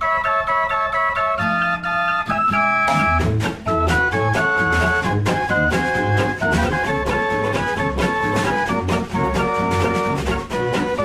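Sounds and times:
mechanical fairground organ: 0.0 - 11.0
guitar and banjo: 1.2 - 11.0
drum and bass beat: 2.9 - 11.0.

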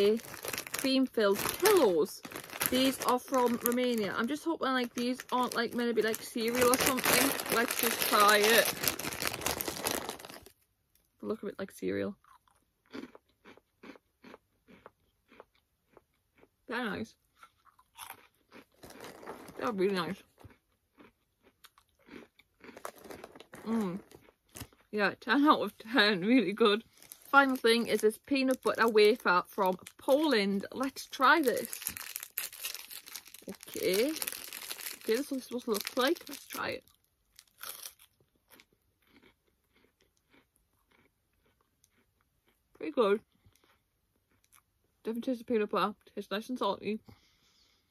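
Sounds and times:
person chewing crunchy cereal: 0.0 - 10.6, 12.2 - 25.9, 26.8 - 44.7.

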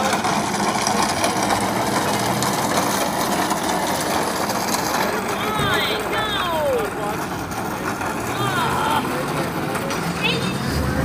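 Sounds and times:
platform cart rolling on asphalt: 0.0 - 11.0.

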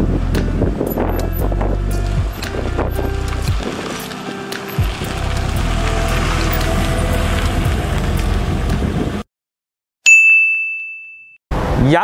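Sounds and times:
background music: 0.0 - 9.0.

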